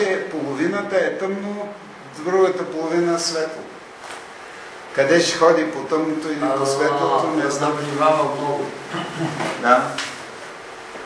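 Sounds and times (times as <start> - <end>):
person speaking: 5.2 - 10.1.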